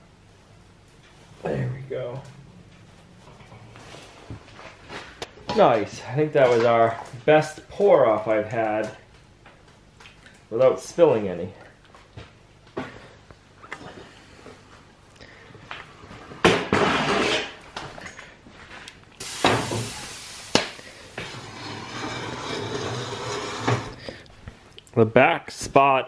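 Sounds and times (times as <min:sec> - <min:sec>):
hiss: 0:19.2 - 0:21.5.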